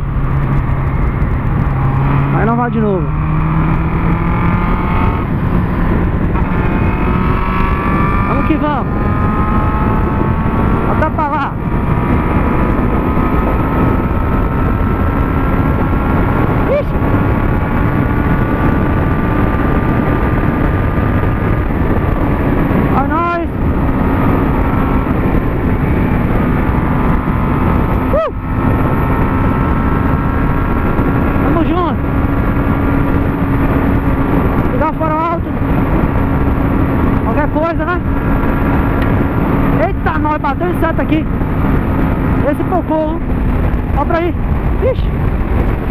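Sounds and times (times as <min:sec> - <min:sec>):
motorcycle engine cruising: 0:00.0 - 0:45.9
wind rush on microphone: 0:00.0 - 0:45.9.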